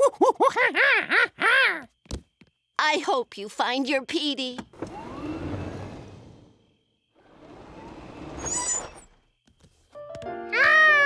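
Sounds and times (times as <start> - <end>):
motor whine rising in pitch: 4.8 - 8.5.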